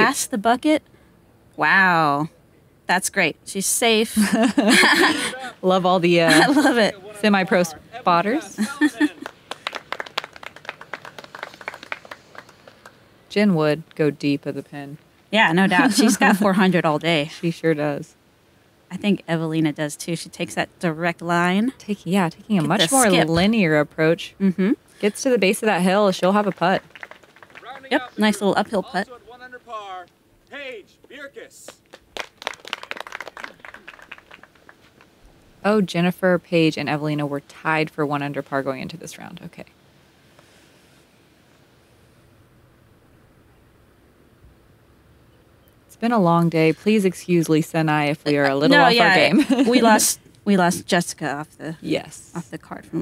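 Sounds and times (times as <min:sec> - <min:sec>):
spectators clapping: 0:08.6 - 0:13.0, 0:26.2 - 0:28.9, 0:31.6 - 0:35.1.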